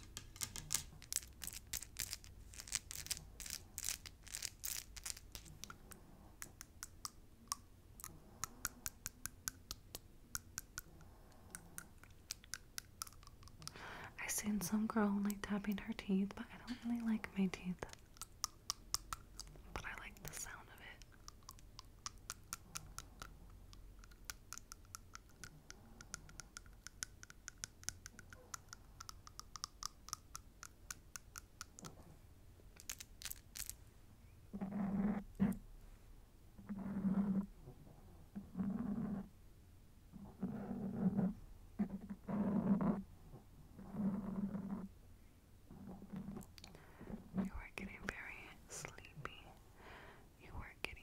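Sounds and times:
soft vocal sounds: 13.6s - 18.2s.

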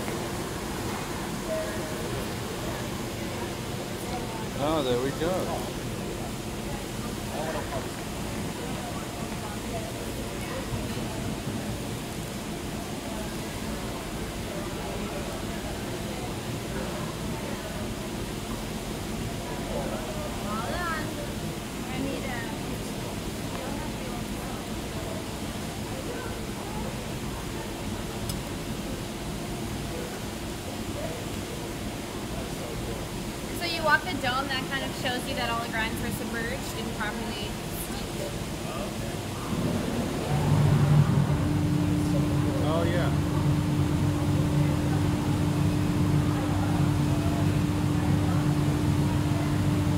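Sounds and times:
faint distant voices: 0.0s - 49.9s.

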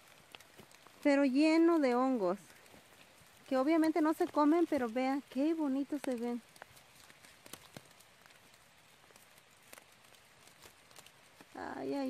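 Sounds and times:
faint clicks: 0.0s - 1.1s, 1.7s - 11.6s.

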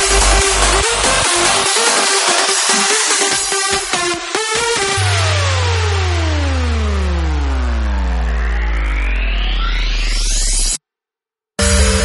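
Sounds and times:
deep bass drone: 0.0s - 1.8s, 5.0s - 10.8s, 11.6s - 12.0s
falling synth sweeps: 5.0s - 10.8s.

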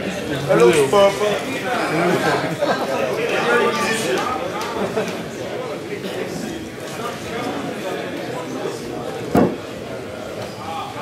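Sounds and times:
audience chatter: 0.0s - 11.0s
loud thump: 9.3s - 9.6s.

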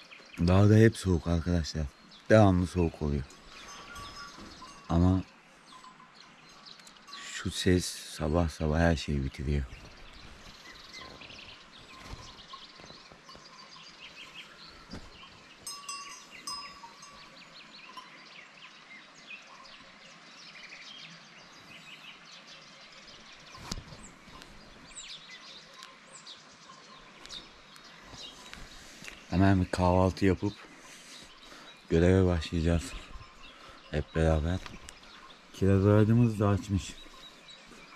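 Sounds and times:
small birds chirping: 0.0s - 37.9s
bell-like rings: 3.2s - 6.1s, 15.6s - 17.4s.

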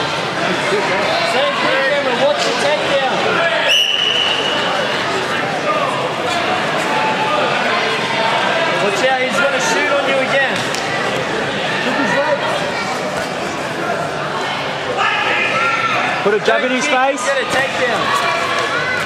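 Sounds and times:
crowd chattering in a hall: 0.0s - 19.0s
referee's whistle blast: 3.7s - 4.7s.

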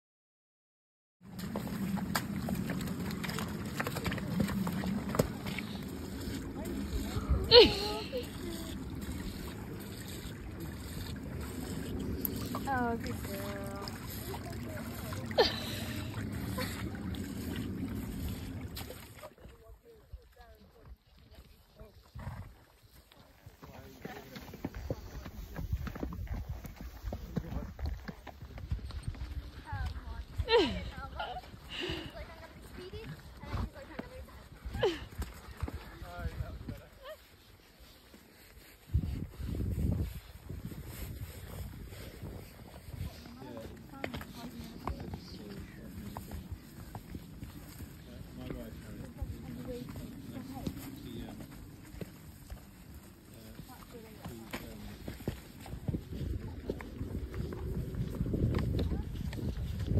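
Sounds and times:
hooves clopping on rocky track: 1.2s - 59.9s
steady low rumble: 1.3s - 19.2s, 39.0s - 53.4s, 54.9s - 59.9s.

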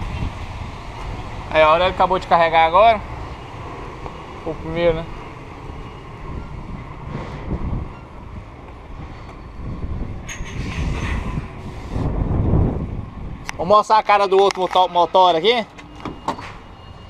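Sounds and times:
lorry diesel engines rumbling: 0.0s - 17.0s.

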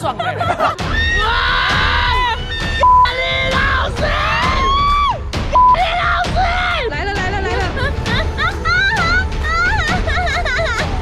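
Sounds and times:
censor bleeps: 2.8s - 3.1s, 5.6s - 5.8s.

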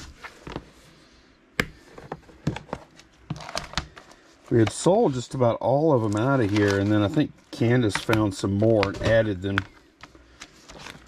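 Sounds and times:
papers crinkling in plastic sleeves: 3.0s - 11.0s.

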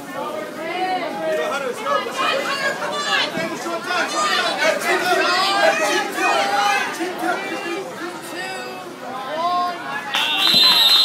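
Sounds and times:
voices talking and calling out: 0.0s - 11.0s.

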